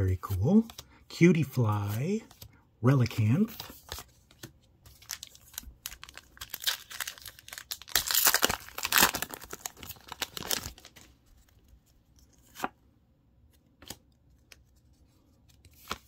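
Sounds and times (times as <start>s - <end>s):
foil wrapper tearing and crinkling: 5.0s - 11.0s.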